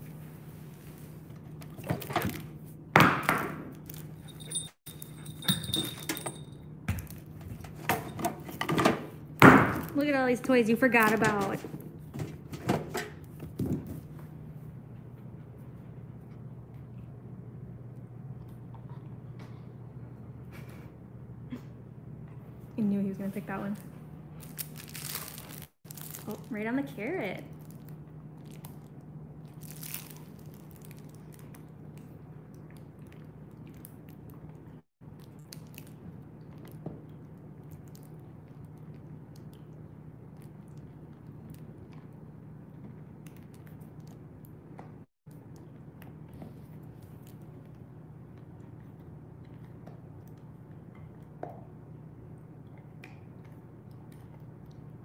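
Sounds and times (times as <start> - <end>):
steady low hum: 3.6 - 55.0.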